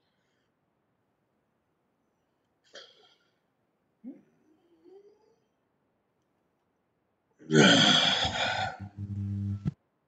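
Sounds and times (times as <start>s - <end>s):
low steady hum: 8.5s - 9.8s.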